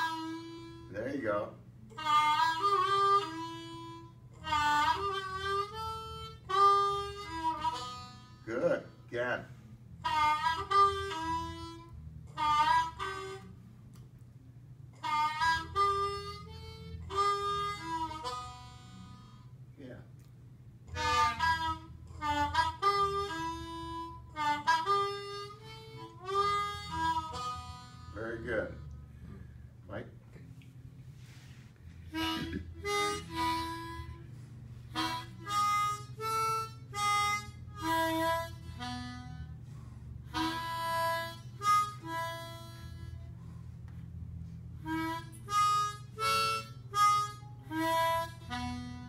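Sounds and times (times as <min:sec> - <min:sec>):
blues harmonica with bending notes: 0:00.0 - 0:14.0, 0:14.6 - 0:19.8, 0:20.8 - 0:29.6, 0:31.1 - 0:49.0.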